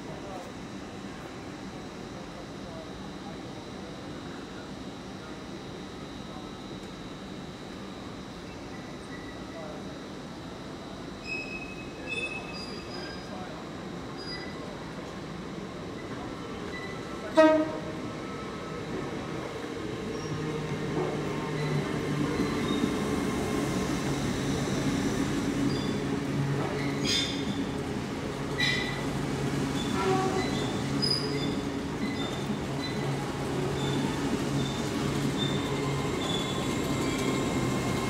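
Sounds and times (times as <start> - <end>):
train rumbling past: 16.6 - 38.0
train horn toot: 17.3 - 17.9, 29.9 - 30.6.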